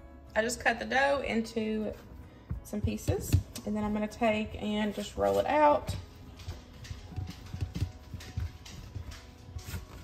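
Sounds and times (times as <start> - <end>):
soft background music: 0.0 - 10.0
hands rolling dough on metal tray: 1.4 - 10.0.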